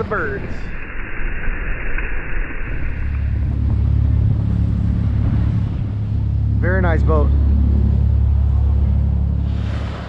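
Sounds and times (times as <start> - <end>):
boat engine rumble: 0.0 - 10.0
wind: 0.0 - 10.0.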